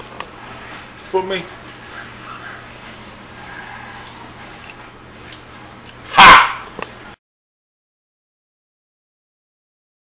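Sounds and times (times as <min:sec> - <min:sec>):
steady low hum: 0:00.0 - 0:07.2.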